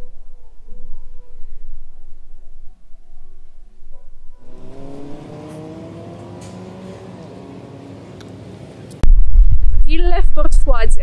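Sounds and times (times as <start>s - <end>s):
soft background music: 0.0s - 8.7s
street noise: 4.4s - 9.0s
vehicle engine accelerating: 4.4s - 9.0s.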